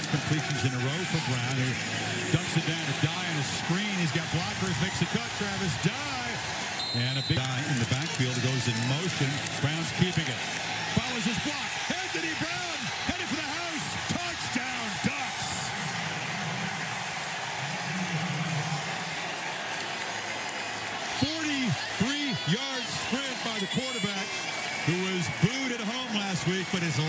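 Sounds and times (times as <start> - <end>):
man speaking: 0.0 - 6.4, 7.0 - 10.4
stadium crowd noise: 0.0 - 27.0.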